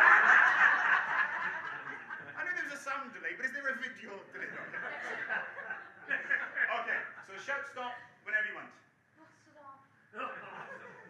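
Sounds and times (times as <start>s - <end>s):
audience laughing: 0.0s - 2.5s, 4.4s - 7.4s, 10.4s - 11.0s.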